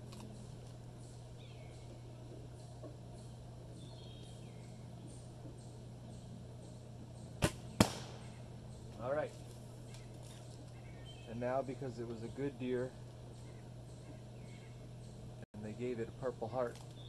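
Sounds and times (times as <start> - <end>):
steady low hum: 0.0 - 17.0
faint bird chirps: 0.2 - 15.4
arrow hitting target crack: 7.4 - 8.3.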